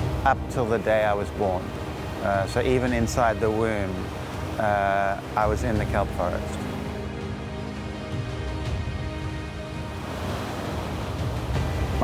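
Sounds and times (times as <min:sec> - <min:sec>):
music: 0:00.0 - 0:12.0
ocean surf on rocky shore: 0:00.0 - 0:12.0.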